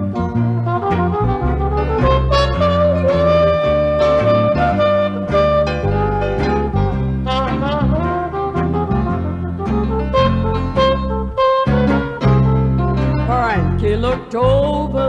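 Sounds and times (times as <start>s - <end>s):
jazz band with horns: 0.3s - 13.8s.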